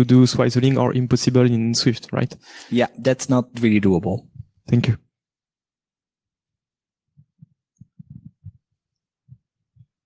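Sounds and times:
microphone handling thumps: 7.2s - 10.0s.

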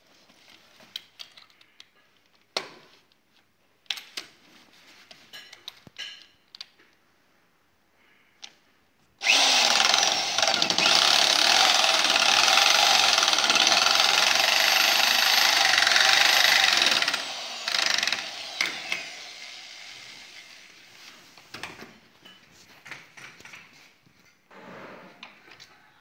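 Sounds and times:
drill clicks: 9.2s - 20.5s
electric drill drilling into wood: 9.2s - 20.7s.

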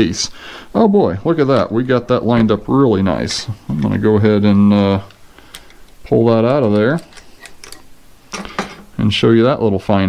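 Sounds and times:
metallic clicks: 5.1s - 8.6s.

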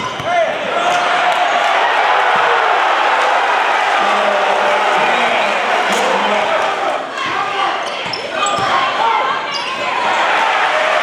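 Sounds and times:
crowd voices and shouts: 0.0s - 11.0s
sneaker squeaks: 7.2s - 9.9s.

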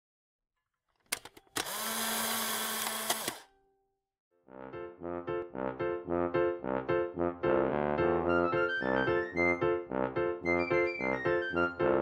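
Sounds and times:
mechanical clicks: 1.0s - 3.4s.

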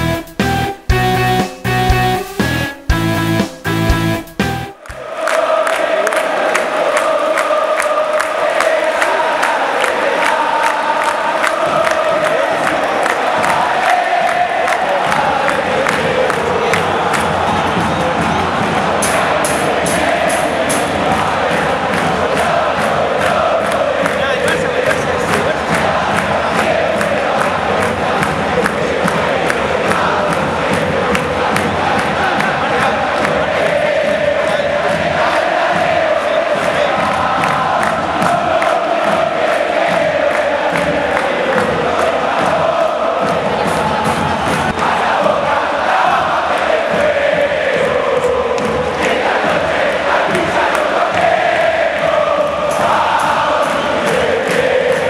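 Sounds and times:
repeated drum beat: 0.0s - 55.0s
stadium crowd singing a chant: 4.8s - 55.0s.

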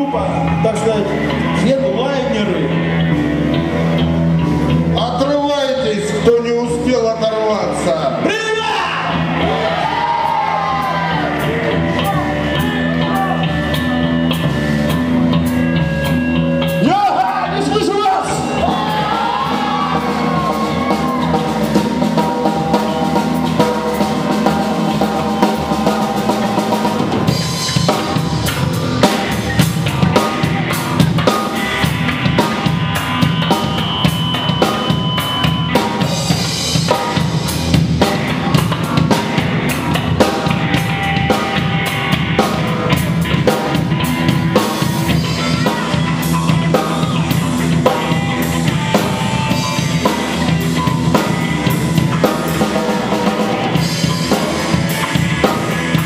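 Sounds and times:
drum kit beating: 0.0s - 56.0s
electric guitars: 0.0s - 56.0s.

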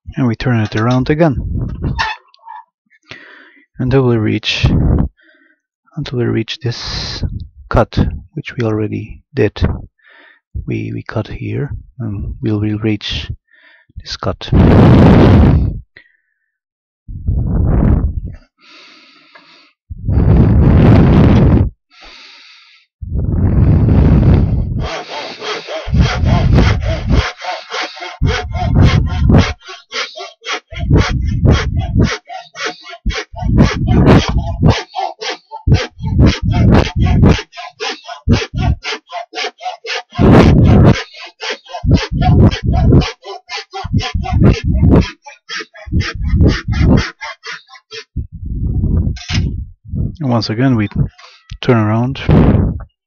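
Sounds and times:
hand saw cutting wood: 24.8s - 48.0s.

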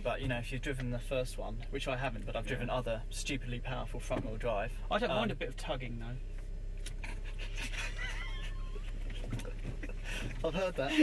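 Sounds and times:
car engine drone inside cabin: 0.0s - 11.0s.

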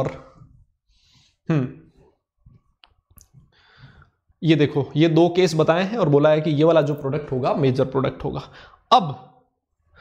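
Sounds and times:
man saying hmm: 1.5s - 2.0s.

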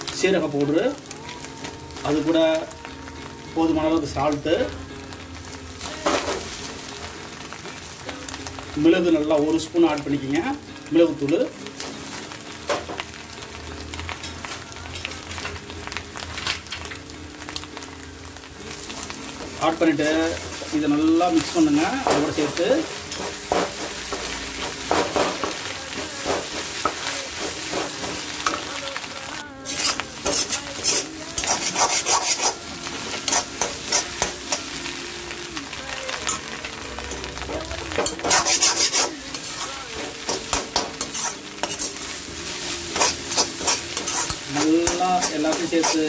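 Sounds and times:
eggs sizzling in a frying pan: 0.0s - 46.0s
metal spatula scraping pan: 29.7s - 34.4s, 38.0s - 46.0s.

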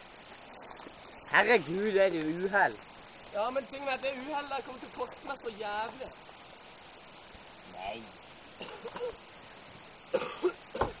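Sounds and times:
person coughing: 8.6s - 9.2s, 10.1s - 10.9s.

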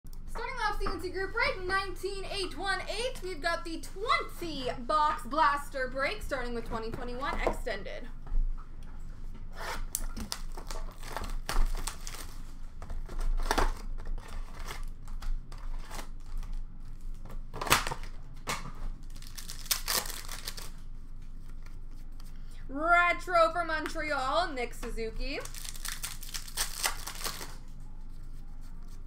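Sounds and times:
cardboard and wrappers tearing: 10.0s - 18.2s, 19.0s - 20.9s, 25.4s - 27.7s.

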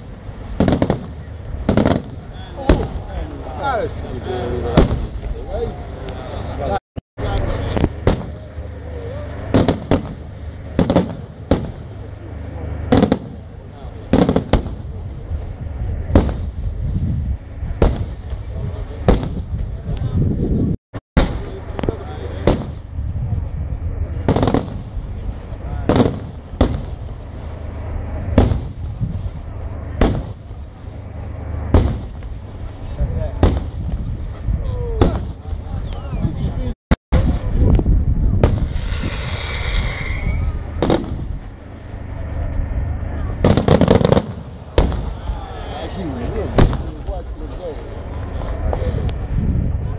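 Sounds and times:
firework shells bursting: 9.5s - 12.0s, 38.4s - 41.4s, 43.4s - 45.2s.

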